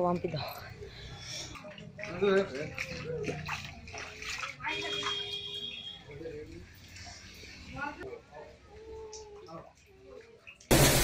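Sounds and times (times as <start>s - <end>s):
floodwater sloshing and splashing: 0.0s - 8.0s.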